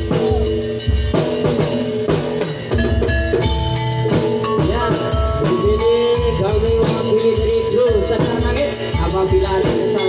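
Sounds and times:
sharp drum strokes: 0.0s - 10.0s
steady drum beat: 0.0s - 10.0s.

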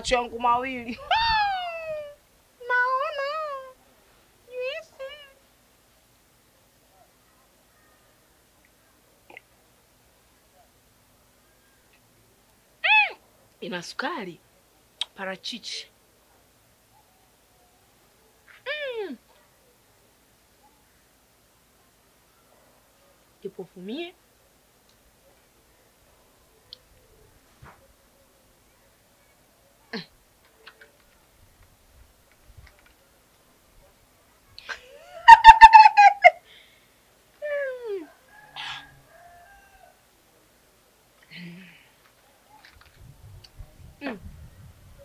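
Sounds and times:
rooster crowing: 38.0s - 40.1s.

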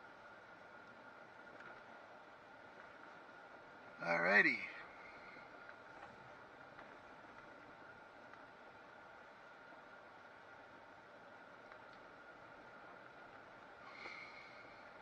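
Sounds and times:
thin steady whine: 0.0s - 15.0s
vehicle running on dirt track: 0.0s - 15.0s
light ticks: 0.6s - 1.9s, 5.0s - 8.7s, 11.3s - 15.0s.

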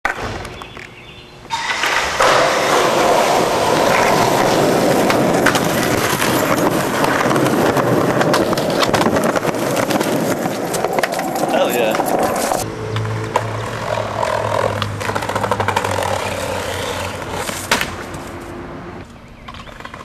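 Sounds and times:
skateboard wheels rolling on concrete: 0.0s - 20.0s.

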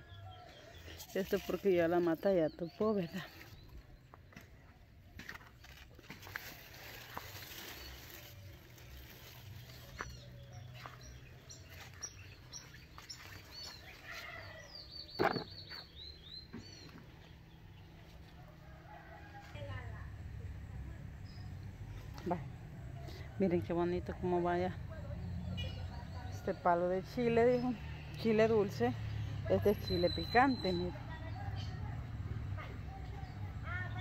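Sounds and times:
birds chirping: 0.0s - 5.7s, 6.4s - 18.8s.

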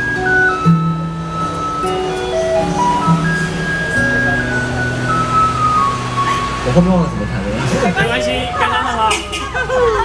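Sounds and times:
fingerstyle acoustic guitar: 0.0s - 9.7s.

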